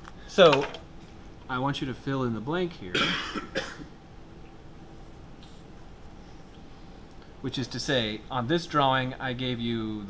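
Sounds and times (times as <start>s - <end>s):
man coughing: 2.9s - 3.9s.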